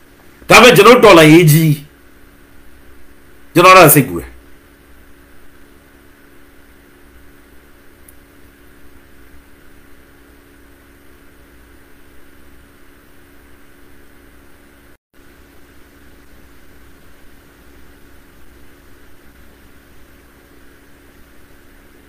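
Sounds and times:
steady low hiss: 0.0s - 10.0s
faint constant hum: 0.0s - 22.0s.

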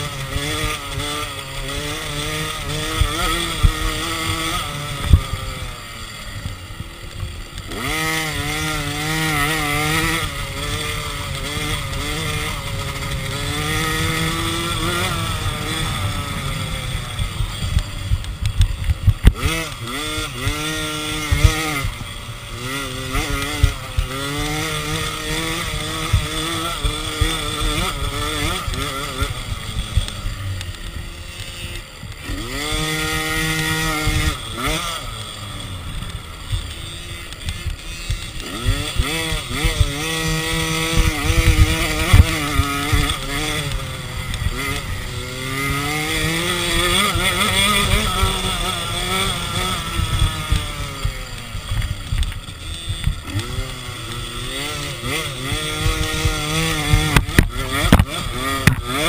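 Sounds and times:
motocross bike engine revving: 0.0s - 59.0s
knocks from rough track: 36.4s - 44.8s, 45.5s - 59.0s.

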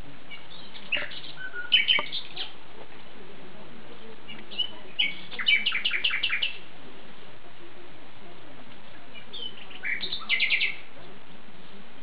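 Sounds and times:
songbird singing: 0.0s - 12.0s.

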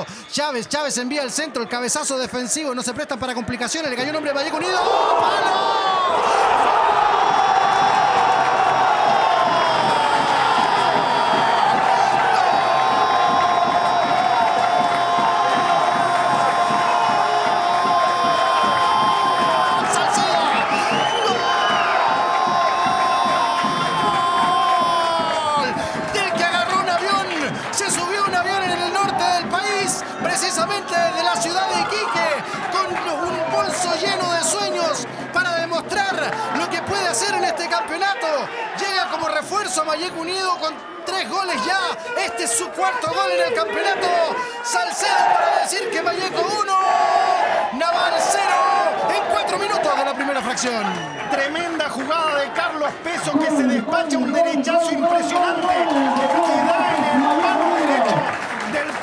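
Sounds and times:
crowd cheering: 0.0s - 59.0s
fast excited shouting: 3.6s - 59.0s.

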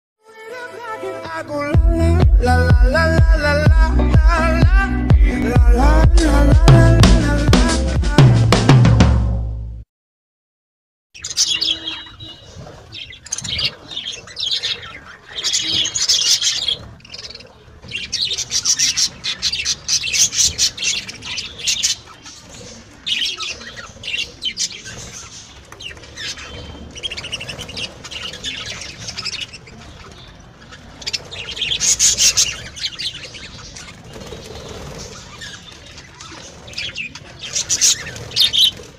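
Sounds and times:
budgerigars chattering and chirping: 11.2s - 38.9s.

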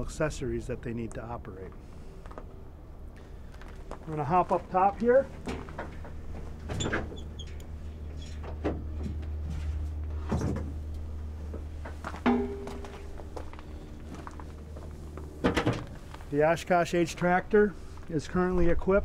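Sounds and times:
low hum: 0.0s - 19.0s
hinge squeak: 6.7s - 8.6s.

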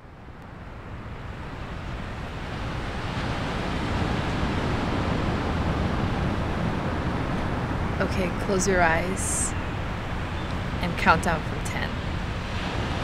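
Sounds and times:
ocean surf breaking on beach: 0.2s - 13.0s.

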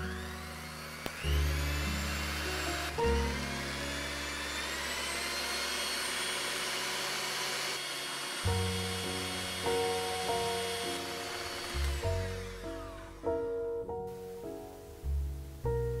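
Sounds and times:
background music: 0.0s - 5.1s, 8.4s - 16.0s
electric hand mixer whirring: 0.0s - 13.5s.

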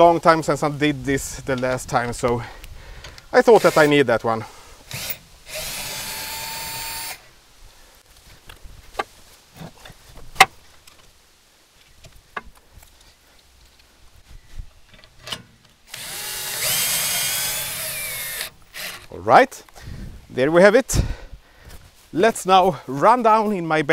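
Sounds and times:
power drill running: 3.6s - 3.9s, 4.9s - 7.2s, 15.9s - 19.1s.

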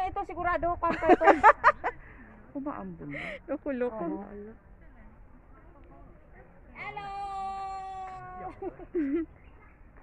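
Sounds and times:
person calling out hello: 6.8s - 8.6s.

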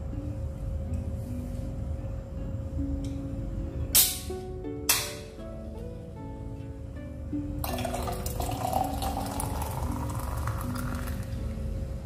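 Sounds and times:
soda fizzing: 7.6s - 11.3s
soda pouring into a glass jar: 7.6s - 11.3s.

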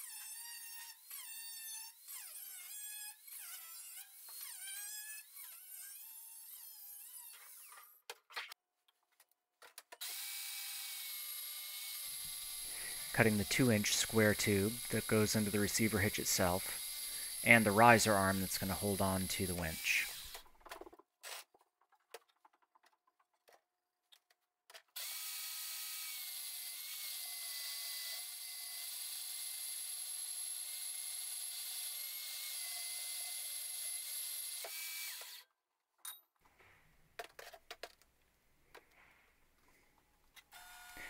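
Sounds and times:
band saw cutting steel: 10.1s - 20.4s.

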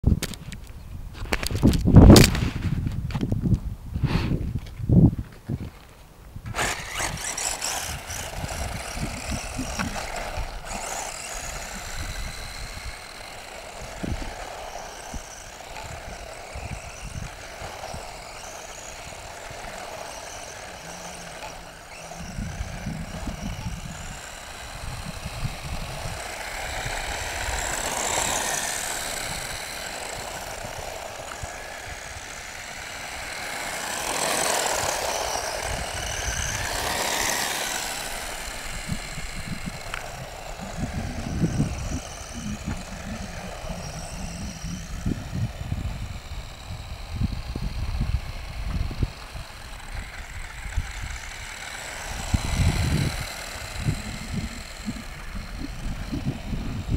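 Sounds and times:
wind rumbling on microphone: 0.0s - 56.9s
rc car motor whining: 6.4s - 56.9s.

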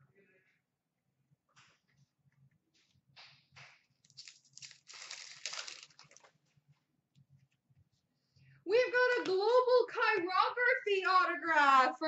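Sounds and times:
foil wrapper tearing and crinkling: 4.0s - 6.4s.

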